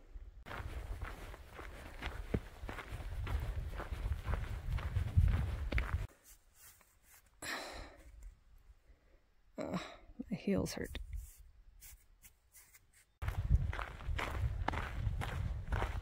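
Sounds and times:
footsteps on dirt and rock trail: 0.4 - 7.0, 11.8 - 16.0.

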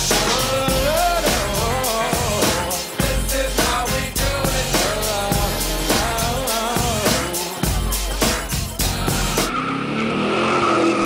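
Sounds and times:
cheer routine music: 0.0 - 9.6
car skid sound effect: 9.1 - 11.0.

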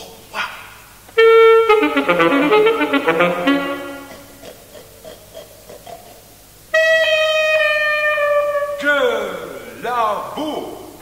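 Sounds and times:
alto saxophone: 1.1 - 4.8, 6.6 - 9.6.

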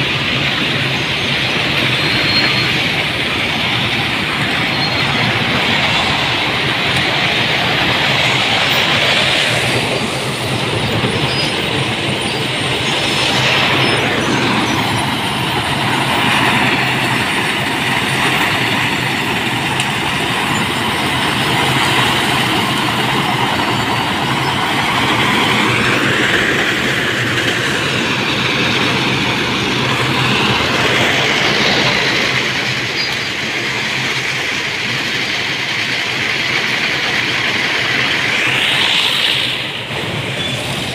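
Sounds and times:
conveyor machinery running: 0.0 - 40.9
metallic squeals: 1.0 - 6.5, 10.9 - 16.0.

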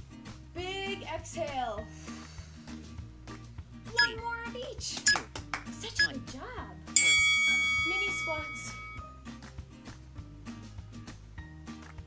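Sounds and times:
workout music with steady beat: 5.0 - 6.2
bright bell-like chime: 7.0 - 9.2.

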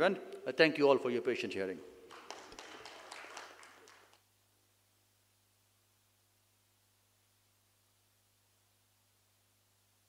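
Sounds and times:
faint scattered applause: 2.1 - 4.3.

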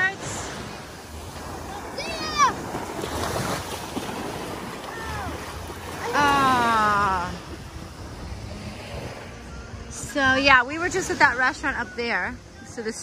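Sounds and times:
small waves washing onto shore: 0.0 - 13.0
wind rumbling on microphone: 0.0 - 13.0.

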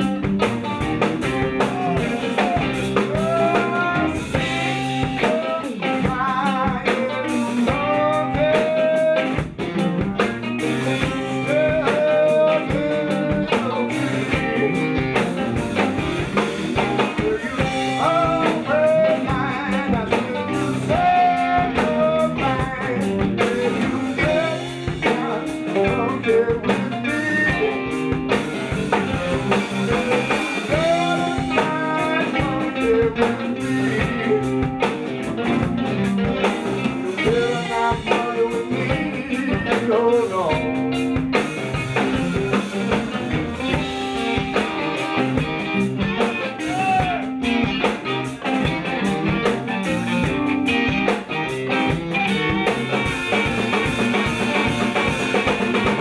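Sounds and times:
blues band playing: 0.0 - 56.0
drum kit: 0.0 - 56.0
guitar: 0.0 - 56.0.

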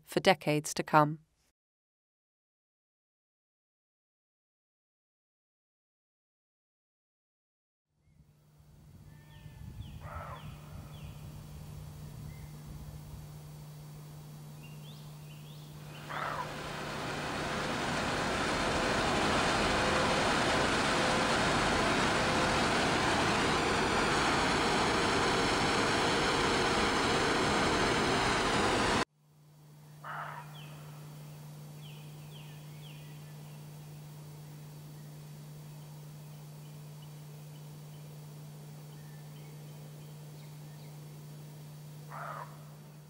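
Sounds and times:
low steady hum: 8.2 - 43.0
gas flares roaring: 14.9 - 29.1
bird chirps: 29.9 - 38.1.

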